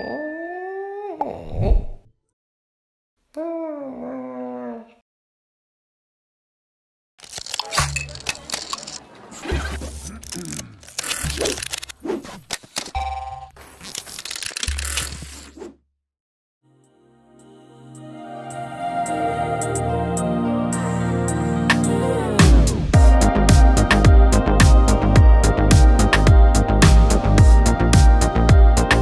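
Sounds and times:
soft ambient music: 16.7 - 22.4.

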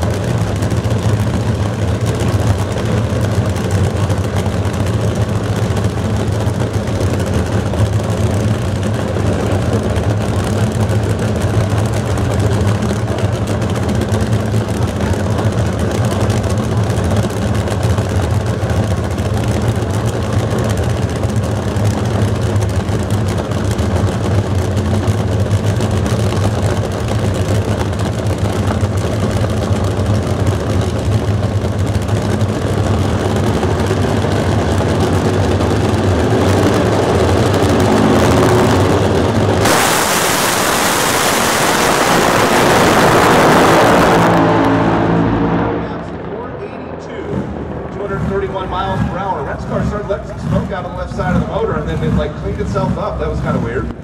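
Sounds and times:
drag racing engines idling: 0.0 - 54.0.

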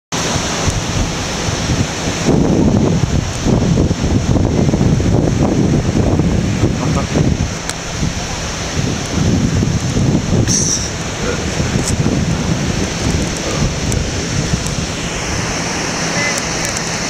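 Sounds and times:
surf washing: 0.1 - 17.0
wind buffeting microphone: 0.2 - 17.0.

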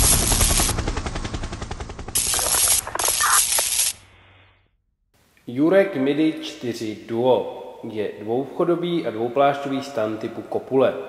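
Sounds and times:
bursts of hiss: 2.2 - 4.4.

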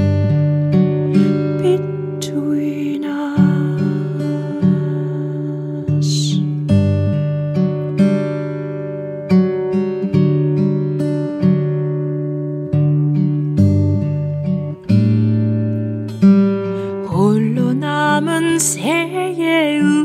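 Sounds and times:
acoustic guitar plucked chords: 0.0 - 20.0.

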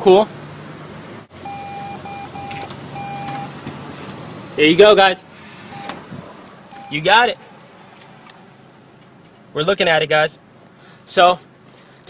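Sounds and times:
cash machine beeping: 1.4 - 3.6, 5.7 - 6.0, 6.7 - 7.2.

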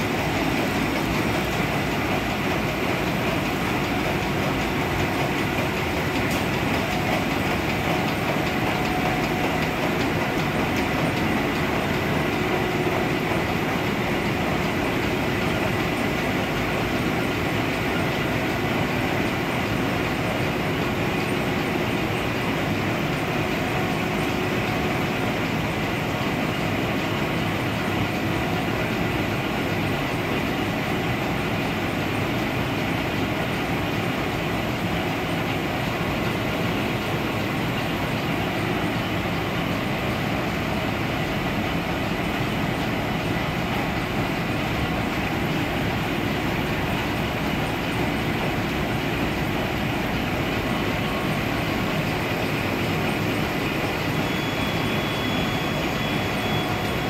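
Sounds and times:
faint continuous whine: 0.0 - 57.0
printing machine clatter: 0.0 - 57.0.

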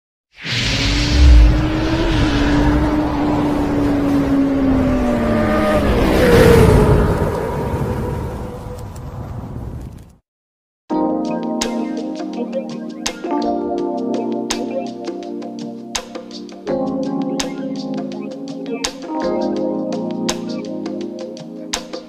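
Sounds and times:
low boom: 0.5 - 3.1.

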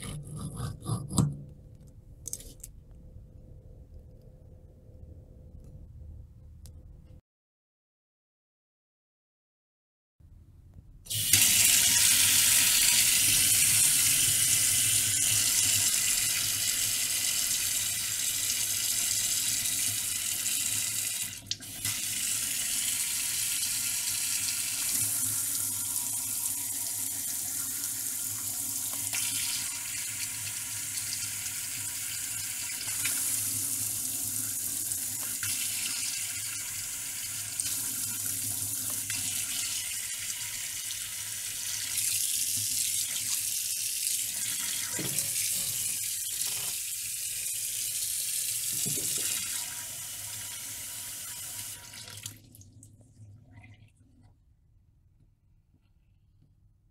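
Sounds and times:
faucet water splashing into sink: 48.5 - 49.8.

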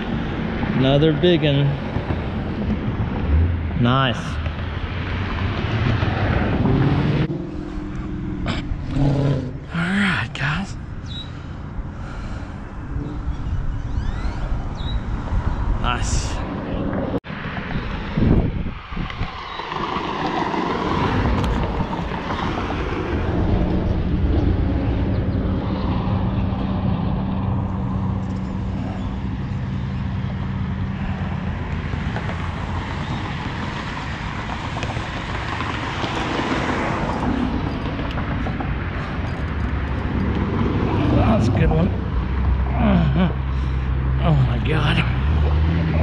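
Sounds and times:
low engine hum: 0.0 - 15.8, 20.1 - 46.0
road traffic rushing: 0.0 - 46.0
wind on microphone: 12.8 - 29.0.

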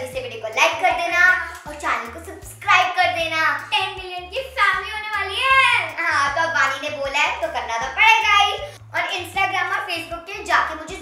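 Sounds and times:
music with pulsing bass: 0.0 - 11.0
girl singing: 0.6 - 11.0.

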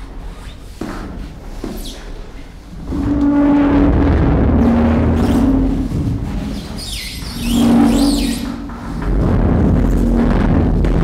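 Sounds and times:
held low hum: 2.2 - 11.0
deep rumble: 2.6 - 11.0
high squeaking chirping glides: 6.5 - 8.7.

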